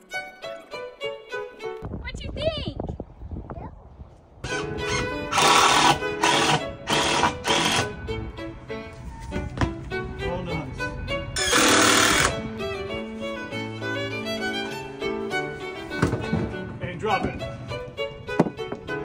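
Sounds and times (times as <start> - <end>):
violin background music: 0.0 - 2.1, 4.4 - 19.0
power drill driving screws: 4.5 - 7.9, 11.4 - 12.3.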